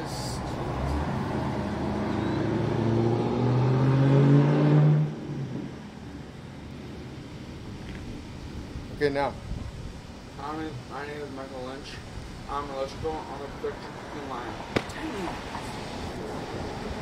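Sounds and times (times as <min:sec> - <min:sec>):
street noise: 0:00.0 - 0:17.0
vehicle engine accelerating past: 0:00.4 - 0:05.9.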